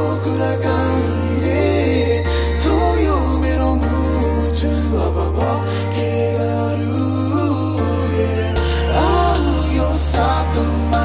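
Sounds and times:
person singing: 0.0 - 11.0
slow pop song: 0.0 - 11.0.

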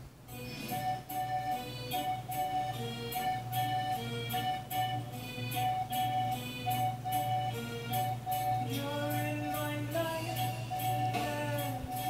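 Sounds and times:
accordion playing: 0.3 - 12.0.

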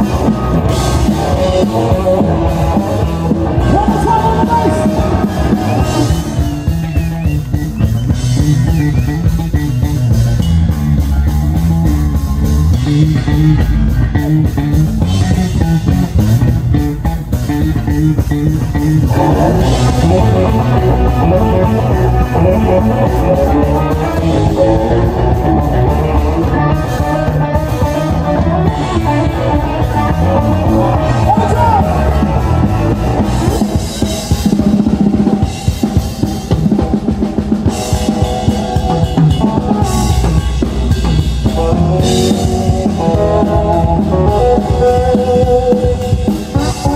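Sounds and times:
drum kit: 0.0 - 46.9
electric bass guitar: 0.0 - 46.9
electric guitar: 0.0 - 46.9.

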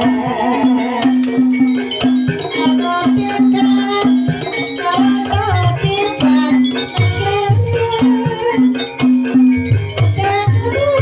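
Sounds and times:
hand drums beating: 0.0 - 11.0
metallophone held notes: 0.0 - 11.0
wavering melody line: 0.0 - 11.0.

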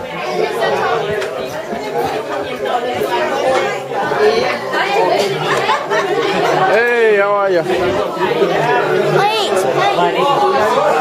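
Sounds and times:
many people talking: 0.0 - 11.0.

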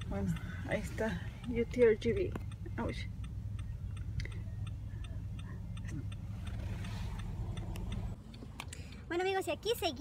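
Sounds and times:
car turn signal ticking: 0.0 - 10.0
engine and road hum: 0.0 - 10.0.

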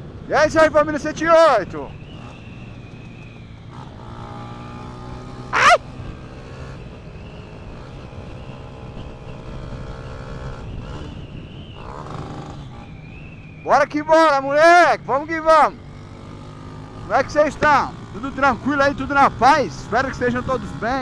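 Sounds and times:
man shouting: 0.3 - 1.6, 5.4 - 5.9, 13.7 - 15.8, 17.1 - 21.0
motorcycle engine running: 1.9 - 13.2, 15.0 - 21.0.

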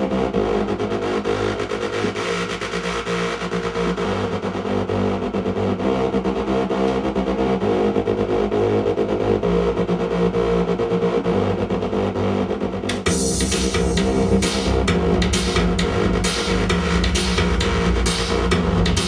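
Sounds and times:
held synthesizer chords: 0.0 - 19.0
soft bass line: 0.0 - 19.0.

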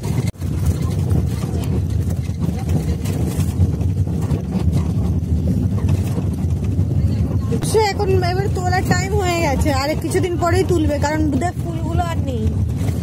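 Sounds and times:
vehicle engine and road rumble: 0.0 - 13.0
wind buffeting microphone: 0.0 - 13.0.

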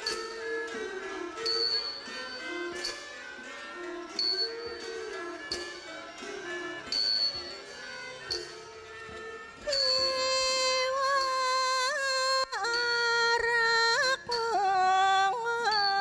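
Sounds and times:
small cymbal strokes: 0.0 - 16.0.

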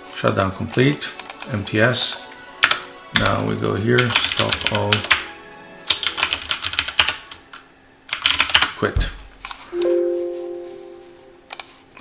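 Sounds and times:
two-note error chime: 9.8 - 11.4.

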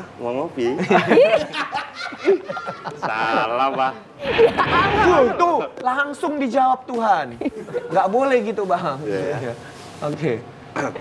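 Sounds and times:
people laughing: 0.8 - 5.6.

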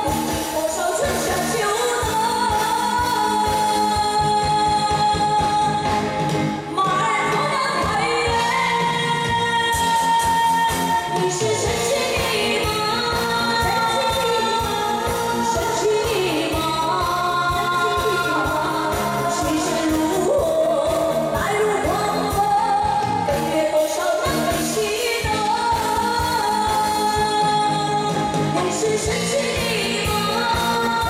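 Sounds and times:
amplified backing track with beat: 0.0 - 31.0
woman singing into a microphone: 0.0 - 31.0.

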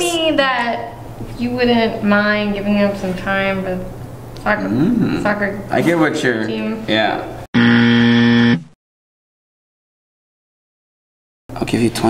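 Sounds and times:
wrong answer buzzer: 7.6 - 8.7.

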